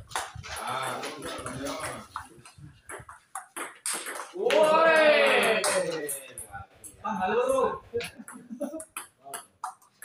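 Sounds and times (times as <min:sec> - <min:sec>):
voices: 0:04.4 - 0:09.4.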